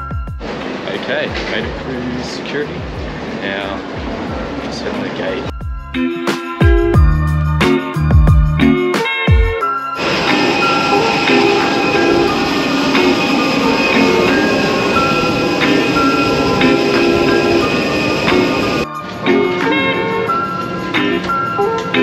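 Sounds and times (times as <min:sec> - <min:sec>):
light plucked melody: 0:06.6 - 0:22.0
rushing roar of aircraft: 0:10.0 - 0:22.0.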